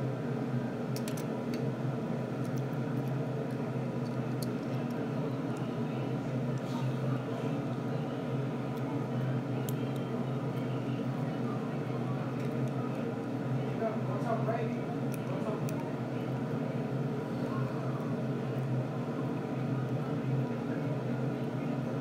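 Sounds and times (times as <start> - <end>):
steady background hum: 0.0 - 22.0.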